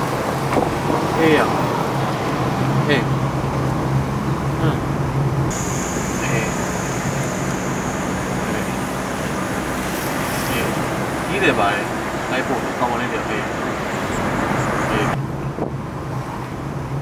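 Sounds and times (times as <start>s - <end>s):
car road and engine noise: 0.0s - 17.0s
low steady hum: 5.5s - 9.8s.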